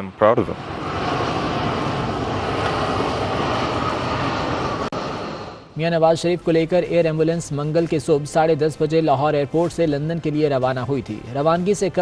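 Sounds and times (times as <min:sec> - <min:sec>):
jet airliner engines rushing: 0:00.0 - 0:10.5.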